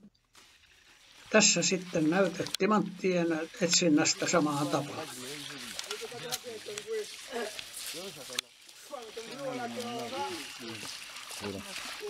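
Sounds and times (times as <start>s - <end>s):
people talking: 1.3s - 12.0s.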